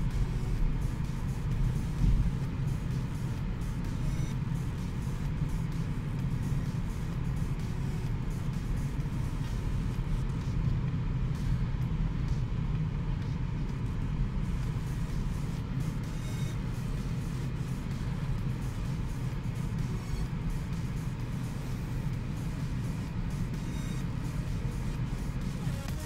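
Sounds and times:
music playing: 0.0s - 26.0s
road and tyre noise: 0.0s - 26.0s.

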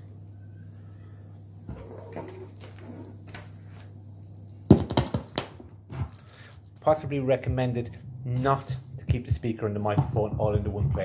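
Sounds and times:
low electrical hum: 0.0s - 11.0s
microphone knock and handling noise: 9.0s - 11.0s.

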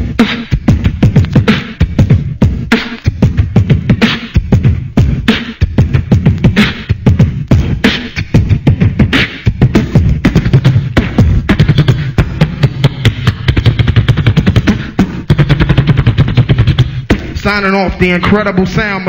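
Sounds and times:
person beatboxing: 0.0s - 19.0s.

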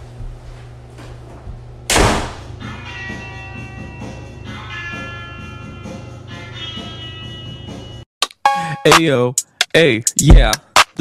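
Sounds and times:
door slamming shut: 1.9s - 2.5s
music: 2.4s - 11.0s.

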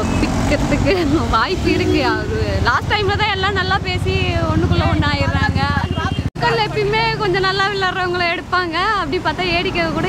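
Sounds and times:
vehicle engine rumble: 0.0s - 10.0s
woman talking: 0.0s - 10.0s.

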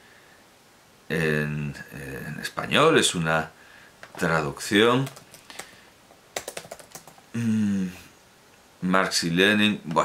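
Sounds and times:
keyboard typing: 5.0s - 5.8s, 6.4s - 7.3s.

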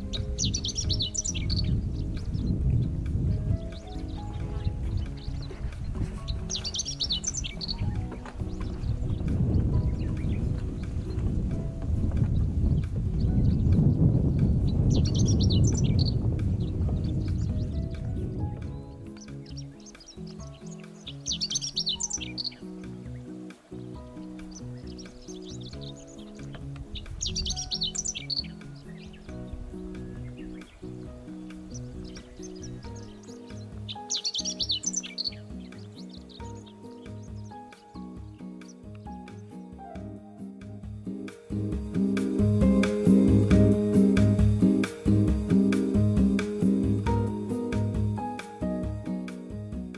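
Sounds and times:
bird singing: 0.0s - 49.6s
soft background music: 0.0s - 49.9s.

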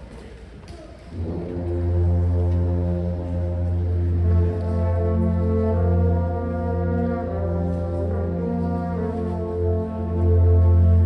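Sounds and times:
wind ensemble brass chords: 1.1s - 11.0s
held low bass note: 1.2s - 11.0s.

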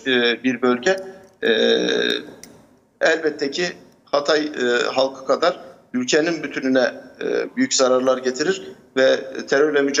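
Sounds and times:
man's drawn-out hesitation sound: 0.0s - 2.4s.

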